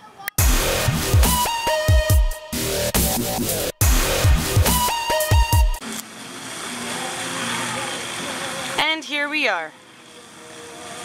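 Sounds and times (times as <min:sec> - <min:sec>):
faint distant voices: 0:06.2 - 0:11.0.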